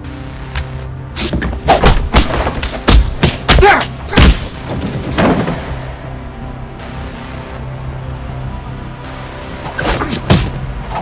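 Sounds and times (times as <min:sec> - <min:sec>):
background music: 0:00.0 - 0:11.0
punch impact sound effects: 0:01.2 - 0:05.7.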